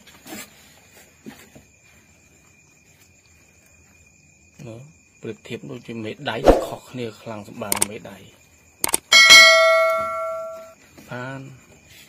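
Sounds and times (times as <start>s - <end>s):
quick clicks: 7.7s - 7.9s, 8.8s - 9.1s
bell ding: 9.1s - 10.8s.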